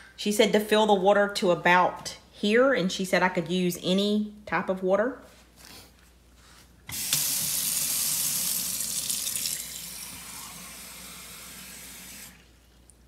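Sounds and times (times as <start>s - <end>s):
faucet water running into pot: 6.9s - 12.6s.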